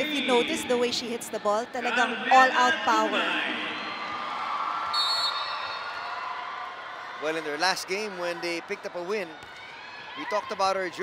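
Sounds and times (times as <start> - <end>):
referee whistle blast: 4.9 - 5.9.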